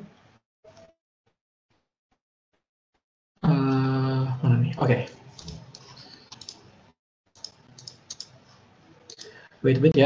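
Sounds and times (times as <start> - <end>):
keyboard and mouse clicking: 5.4 - 6.6, 7.4 - 8.4, 9.1 - 9.4.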